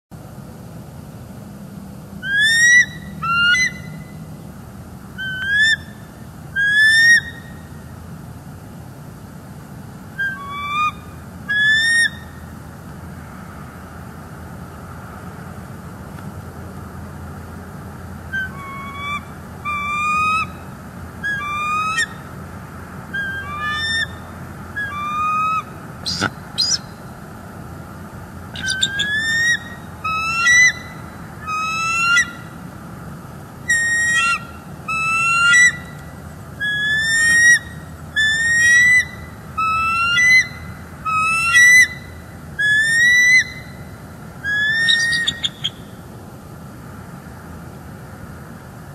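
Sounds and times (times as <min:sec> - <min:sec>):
eagle calling: 0:02.2 - 0:04.4, 0:05.1 - 0:07.8, 0:10.2 - 0:12.5, 0:18.2 - 0:22.4, 0:23.0 - 0:27.2, 0:28.5 - 0:32.7, 0:33.6 - 0:46.1.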